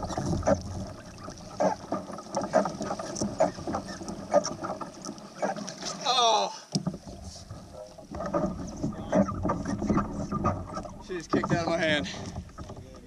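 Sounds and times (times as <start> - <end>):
water splashing against kayak hull: 0.0 - 13.0.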